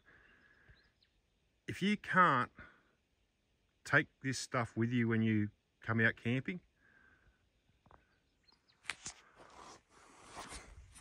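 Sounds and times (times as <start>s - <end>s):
faint bird chirps: 0.0s - 1.8s, 6.6s - 9.4s.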